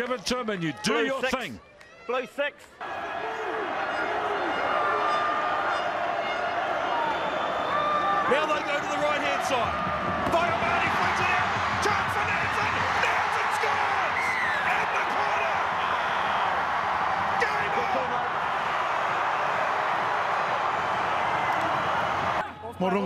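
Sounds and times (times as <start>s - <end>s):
crowd cheering and shouting: 0.8s - 23.0s.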